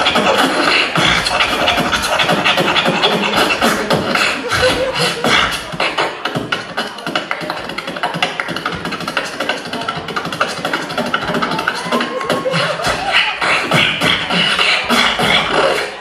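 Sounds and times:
beatboxing into a microphone: 0.0s - 16.0s.

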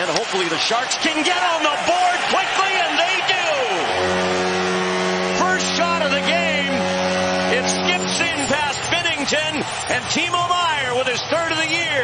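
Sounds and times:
goal horn blast: 3.2s - 9.3s.

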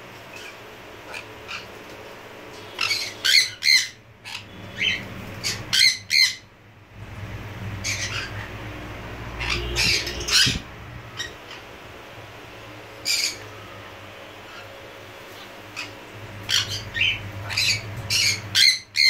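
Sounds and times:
parrot screeching: 0.3s - 1.8s, 2.7s - 6.5s, 7.8s - 8.6s, 9.4s - 11.7s, 13.0s - 13.6s, 15.7s - 19.0s.

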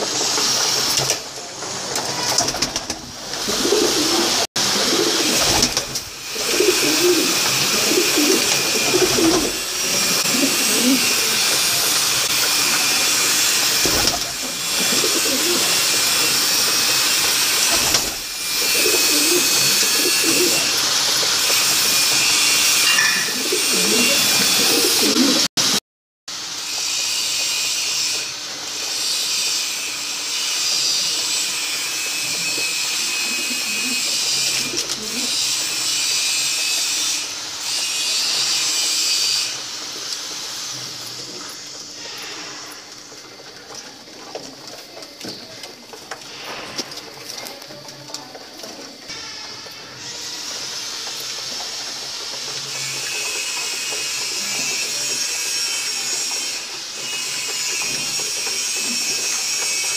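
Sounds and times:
pigeons cooing: 2.2s - 25.5s, 32.2s - 36.8s, 57.0s - 59.9s.

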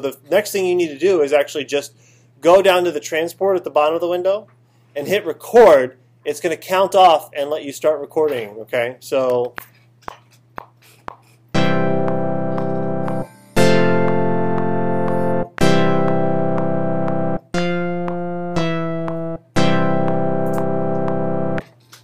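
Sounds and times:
synthesizer chords: 11.6s - 21.6s.

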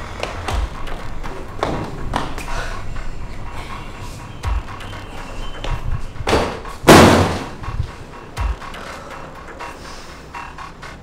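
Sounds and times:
background music: 0.0s - 11.0s
loud sudden impact: 6.4s - 7.7s.

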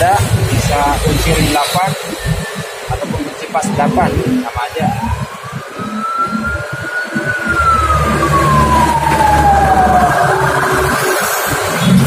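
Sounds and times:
siren wailing: 0.2s - 12.0s.

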